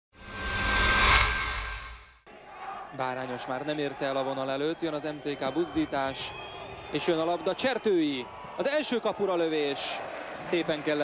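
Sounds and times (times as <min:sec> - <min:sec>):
whoosh: 0:00.2 - 0:02.2.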